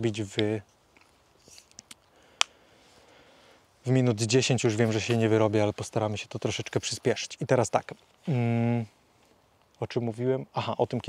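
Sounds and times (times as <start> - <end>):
faint rustling: 0.1 - 9.6.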